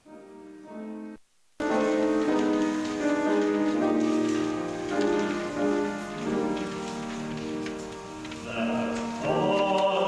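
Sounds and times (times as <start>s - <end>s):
grand piano slow chords: 0.0s - 10.0s.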